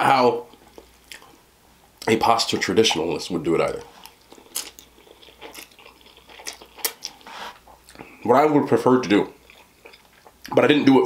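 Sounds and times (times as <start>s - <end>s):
chewing with wet mouth sounds: 0.5s - 1.4s, 3.7s - 8.2s, 9.2s - 10.9s.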